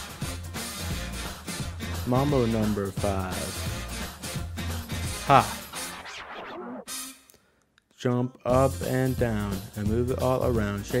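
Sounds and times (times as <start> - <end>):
record scratching: 5.2 - 6.9.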